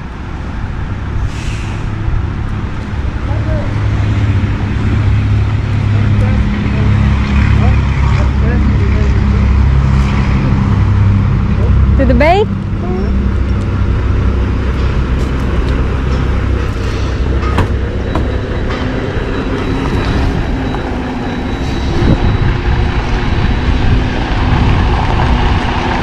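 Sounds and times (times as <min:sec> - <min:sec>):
diesel truck engine: 0:00.0 - 0:26.0
short hiss: 0:01.3 - 0:01.9.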